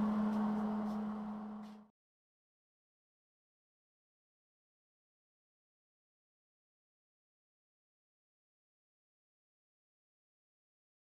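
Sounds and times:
steady low hum: 0:00.0 - 0:01.9.

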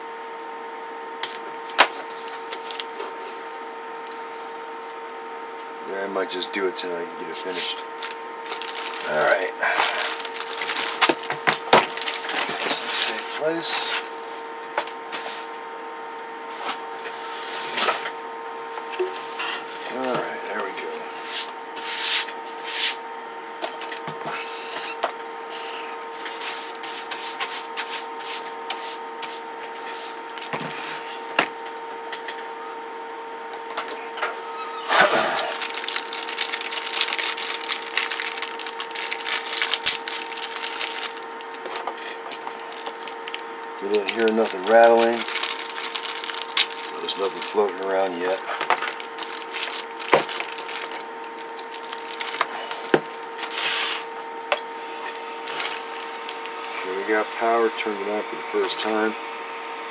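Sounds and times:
power cord being unwrapped: 0:01.2 - 0:03.0, 0:07.9 - 0:13.8, 0:30.2 - 0:30.8, 0:34.9 - 0:54.1, 0:55.1 - 0:56.8
plastic bag rustling: 0:01.7 - 0:03.4, 0:07.4 - 0:14.2, 0:29.8 - 0:31.3, 0:34.9 - 0:54.5, 0:55.1 - 0:56.9.

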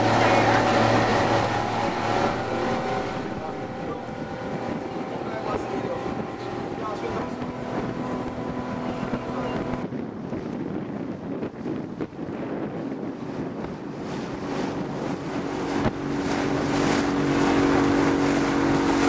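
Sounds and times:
outboard motor running: 0:00.0 - 0:19.0
rushing water: 0:00.0 - 0:19.0
wind on microphone: 0:00.0 - 0:19.0.

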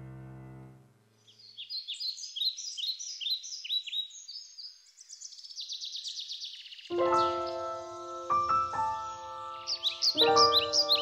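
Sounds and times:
songbird chirping and trilling: 0:01.1 - 0:11.0.

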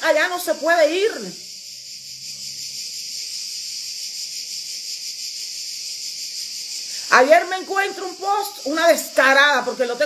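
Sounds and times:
high-pitched hiss-like drone: 0:00.0 - 0:10.0.

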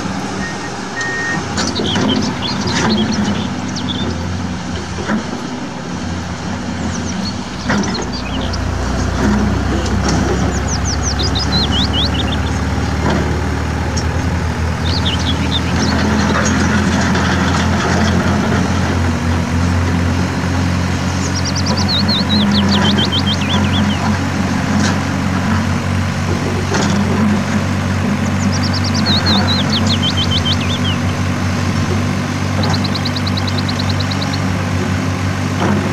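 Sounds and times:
excavator diesel engine: 0:00.0 - 0:35.9
truck engines idling: 0:00.0 - 0:35.9
high falling chirps: 0:10.5 - 0:13.0, 0:13.8 - 0:17.7, 0:20.9 - 0:24.1, 0:28.2 - 0:31.6, 0:32.4 - 0:34.5.

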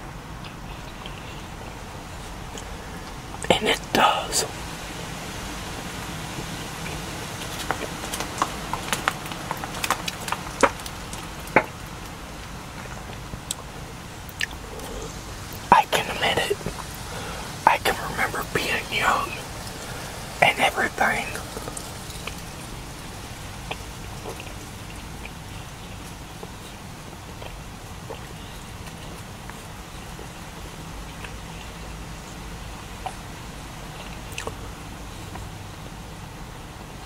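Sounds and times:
steady hiss: 0:00.0 - 0:37.0
person chewing with wet smacks: 0:06.8 - 0:17.2, 0:21.4 - 0:31.8, 0:32.8 - 0:35.6
wet mouth clicks: 0:14.3 - 0:17.0, 0:34.0 - 0:34.6.

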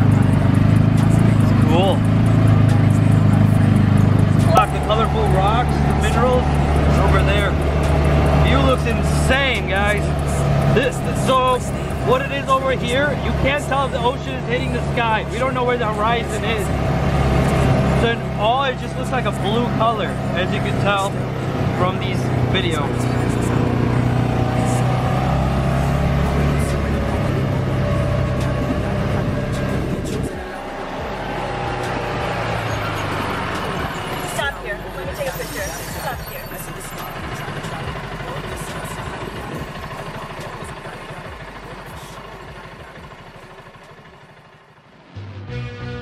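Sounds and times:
guitar music: 0:00.0 - 0:35.2, 0:45.0 - 0:46.0
off-road buggy engine running: 0:00.0 - 0:46.0.

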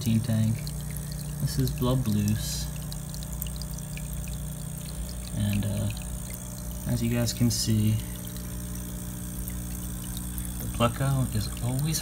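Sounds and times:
bubbling water: 0:00.0 - 0:12.0
low electric hum: 0:00.0 - 0:12.0
man talking: 0:01.4 - 0:02.7, 0:05.3 - 0:06.0, 0:06.8 - 0:08.1, 0:10.6 - 0:12.0.

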